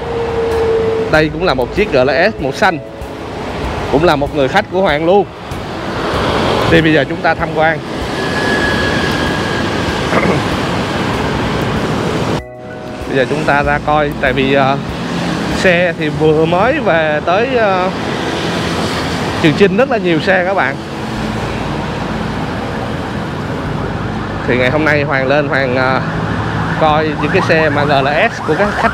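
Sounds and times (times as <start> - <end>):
street traffic: 0.0 - 28.9
short laugh: 10.1 - 10.5.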